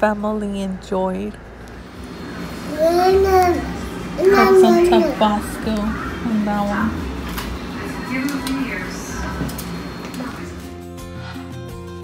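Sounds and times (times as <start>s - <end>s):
background music with held notes: 10.4s - 12.0s.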